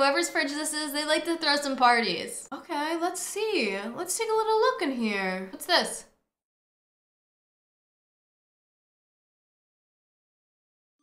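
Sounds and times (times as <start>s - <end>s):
voice: 0.0s - 6.1s.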